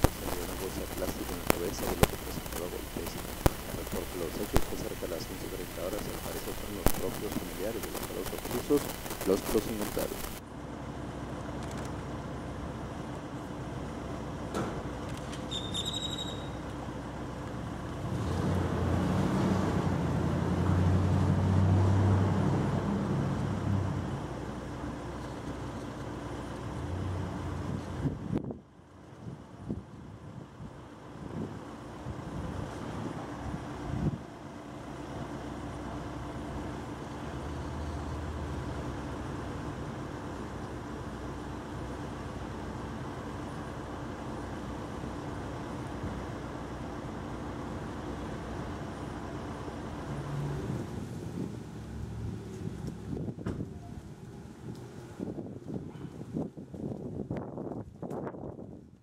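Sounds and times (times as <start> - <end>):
steady low hum: 0.0 - 15.4
vehicle engine rumbling: 0.0 - 58.0.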